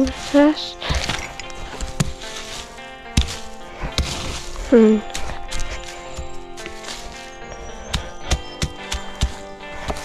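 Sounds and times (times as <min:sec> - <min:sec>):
hand tool chopping into soil: 0:00.0 - 0:07.1, 0:07.9 - 0:10.0
background music: 0:00.0 - 0:10.0.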